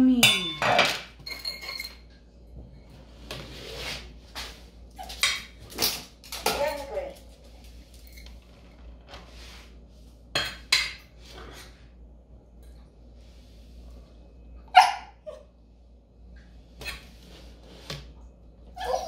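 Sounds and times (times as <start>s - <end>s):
dishes and utensils clinking: 0.2s - 2.2s.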